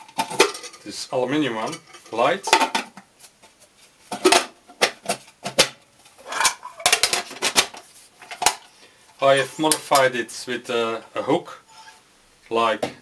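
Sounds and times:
metal mess tin knocking and clinking: 0:00.0 - 0:00.9, 0:01.6 - 0:03.0, 0:05.5 - 0:07.7.

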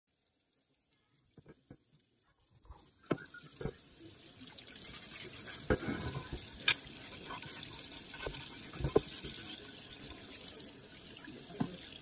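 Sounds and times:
faucet water running into sink: 0:00.1 - 0:12.0.

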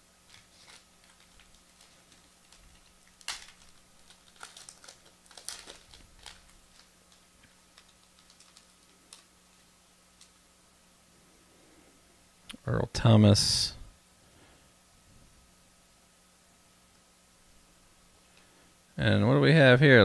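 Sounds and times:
pack wrapper crinkling: 0:00.2 - 0:10.4
trading cards handling: 0:00.2 - 0:10.4.

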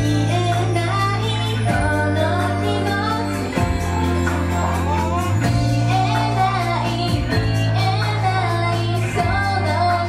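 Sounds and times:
female voices singing pop: 0:00.0 - 0:10.0
loud backing music with beat: 0:00.0 - 0:10.0.

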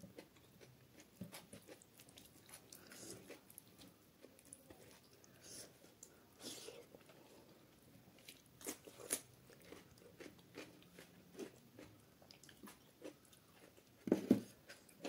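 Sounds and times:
person chewing food: 0:00.0 - 0:15.0.

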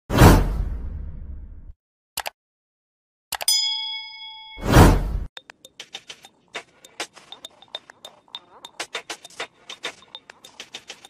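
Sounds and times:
whoosh with deep boom: 0:00.1 - 0:01.8.

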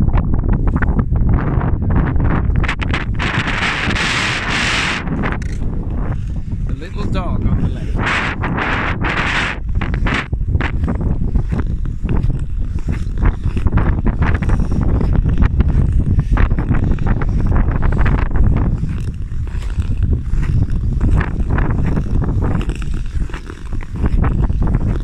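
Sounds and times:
wind on microphone: 0:00.0 - 0:25.0
ice skates scraping ice: 0:02.0 - 0:25.0.

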